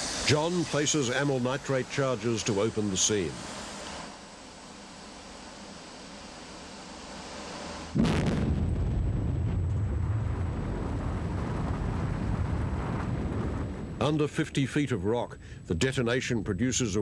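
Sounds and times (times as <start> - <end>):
muffled underground blast: 7.9 - 14.2.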